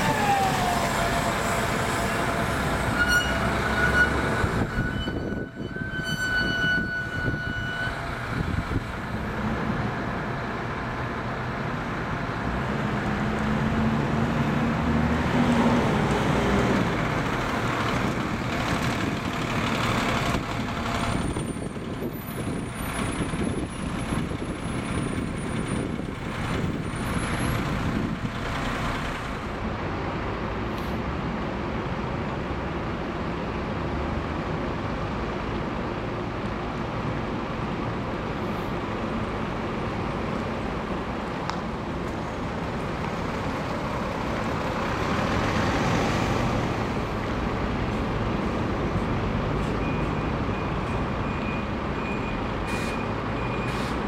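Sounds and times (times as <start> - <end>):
bus drive whine: 0.0 - 54.0
traffic noise: 0.0 - 54.0.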